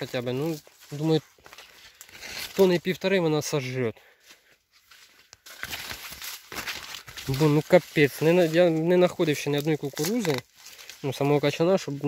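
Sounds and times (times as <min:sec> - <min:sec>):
maize leaves rustling and crackling: 0:00.0 - 0:12.0.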